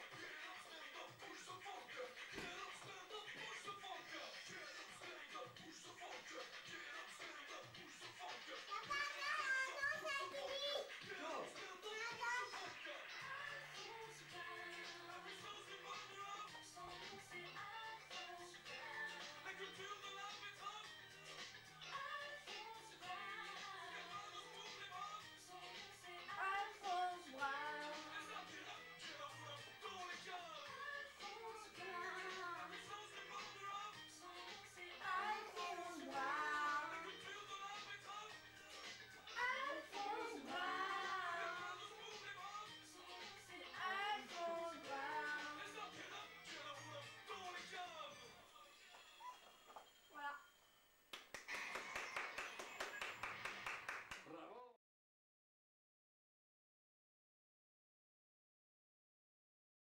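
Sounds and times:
music playing: 0.0s - 50.5s, 51.5s - 54.0s
child singing: 8.2s - 20.9s, 21.9s - 38.4s, 39.3s - 46.3s
sharp hand claps: 51.1s - 54.3s.

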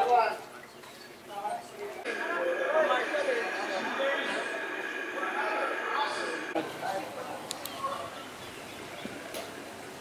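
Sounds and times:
people talking indistinctly: 0.0s - 8.7s
ambient hum: 2.0s - 10.0s.

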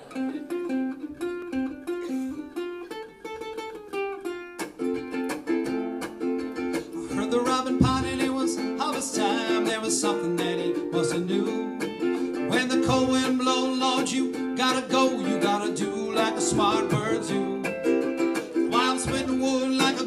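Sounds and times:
ukulele plucking: 0.0s - 20.0s.

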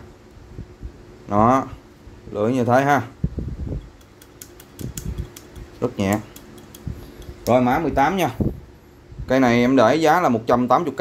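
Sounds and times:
faint steady hum: 0.0s - 11.0s
pliers clicking and tapping: 3.8s - 7.6s.

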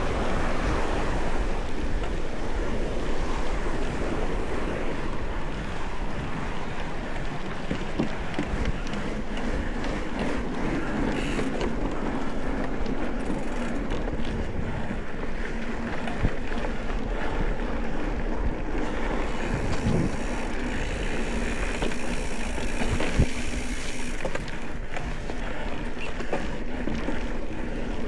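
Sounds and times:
bike tyres rumbling on trail: 0.0s - 28.0s
wind buffeting microphone: 0.0s - 28.0s
bike knocks and rattles: 7.4s - 12.0s, 18.8s - 27.4s.

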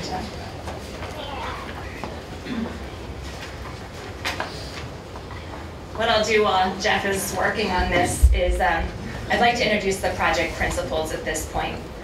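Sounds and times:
faint murmuring voices: 0.0s - 5.9s
steady low hum: 0.0s - 12.0s.

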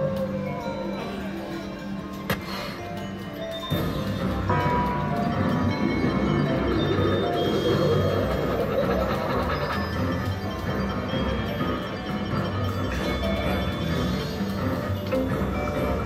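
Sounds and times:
spooky slot machine music: 0.0s - 16.0s.

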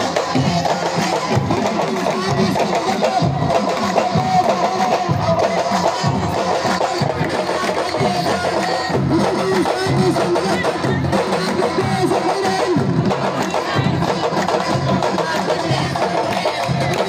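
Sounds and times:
fast traditional drumming: 0.0s - 17.0s.

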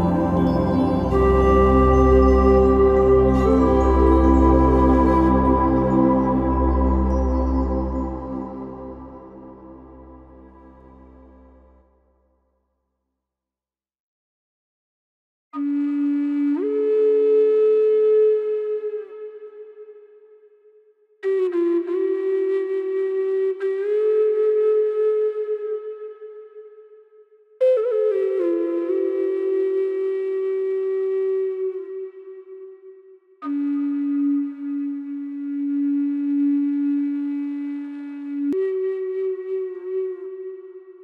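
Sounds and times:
flute holding long note: 0.0s - 11.8s, 15.6s - 20.4s, 21.2s - 27.0s, 27.6s - 41.0s.

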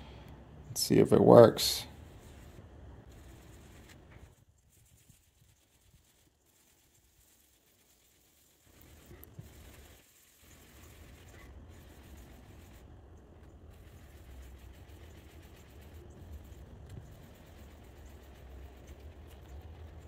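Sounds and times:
applicator pad rubbing car paint: 1.9s - 20.0s.

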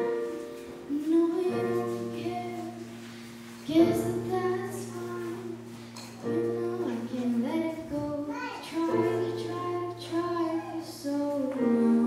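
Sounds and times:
girl singing into microphone: 0.0s - 12.0s.

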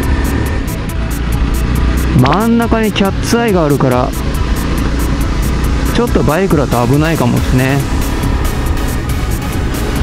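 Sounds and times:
background music with ticking beat: 0.0s - 10.0s
motorcycle engine running: 0.0s - 10.0s.

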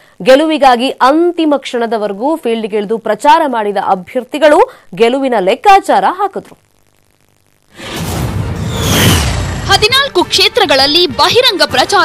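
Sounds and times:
woman speaking: 0.2s - 6.6s, 9.7s - 12.0s
whoosh sound effect: 7.8s - 9.8s.

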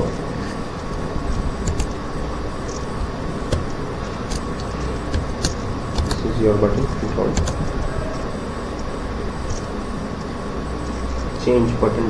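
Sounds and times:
low background rumble and hiss: 0.0s - 12.0s
computer mouse clicks: 0.8s - 2.0s, 3.5s - 6.2s, 6.8s - 10.3s.

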